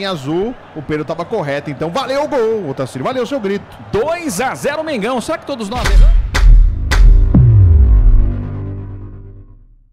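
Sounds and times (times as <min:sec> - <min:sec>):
deep bass boom: 0:05.8 - 0:09.7
tone sweeping down in pitch: 0:07.3 - 0:09.6.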